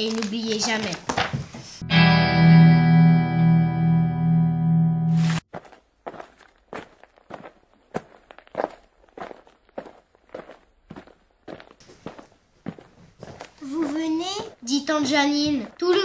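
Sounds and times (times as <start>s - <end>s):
footsteps walking: 0.0s - 1.8s, 5.2s - 16.0s
guitar music: 1.8s - 5.4s.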